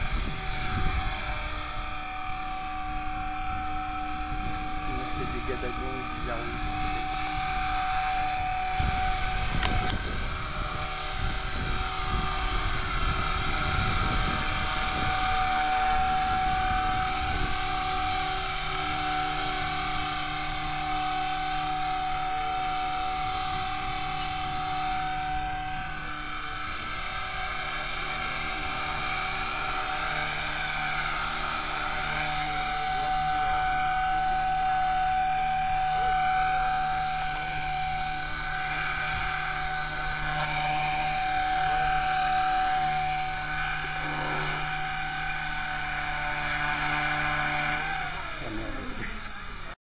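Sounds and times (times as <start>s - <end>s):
wind rumble on microphone: 0.0s - 49.7s
rc helicopter high whine: 0.0s - 49.8s.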